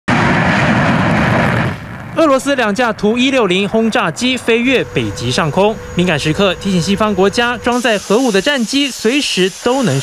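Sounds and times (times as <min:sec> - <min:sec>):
jet engines at takeoff power: 0:00.1 - 0:10.0.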